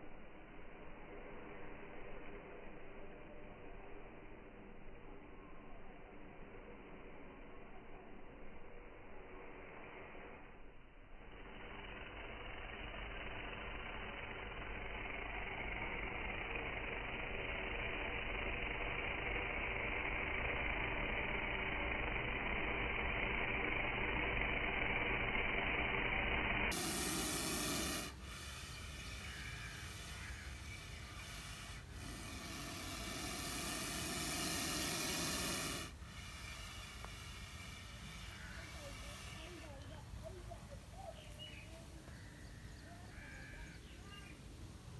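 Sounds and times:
cobra hissing: 9.0 - 10.6, 11.4 - 44.4.

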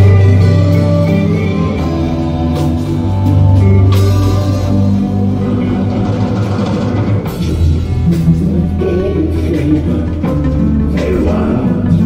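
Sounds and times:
bass guitar: 0.0 - 12.0
drums: 0.0 - 12.0
electric guitar: 0.0 - 12.0.

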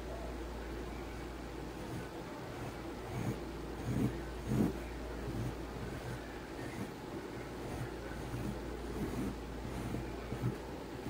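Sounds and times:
steady low hum: 0.0 - 11.0
pencil strokes on paper: 1.8 - 10.6.

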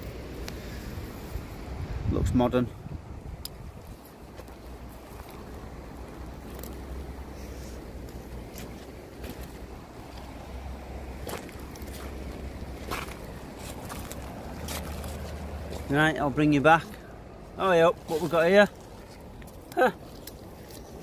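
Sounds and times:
low wind rumble on microphone: 0.0 - 17.6
footsteps crunching on pebbles: 3.8 - 6.8, 8.0 - 16.1.

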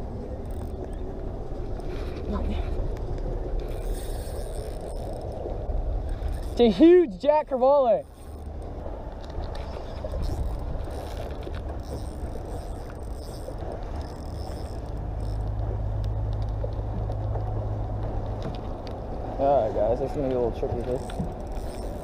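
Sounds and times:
electric trolling motor humming: 0.0 - 22.0
water around a boat: 0.0 - 22.0
wind: 0.0 - 22.0.

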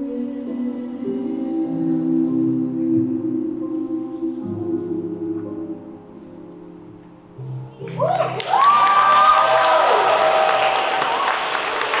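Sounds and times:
audience clapping: 7.8 - 12.0
people cheering: 7.8 - 12.0.

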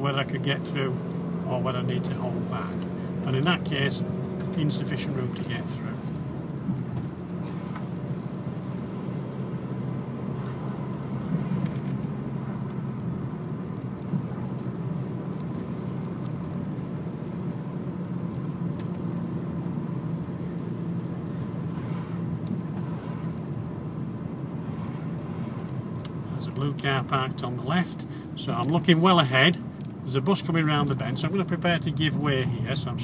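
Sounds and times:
car engine and tyre noise: 0.0 - 33.0.

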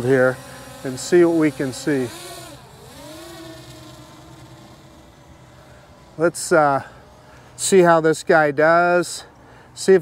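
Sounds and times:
quadcopter motors whining: 0.0 - 8.3.

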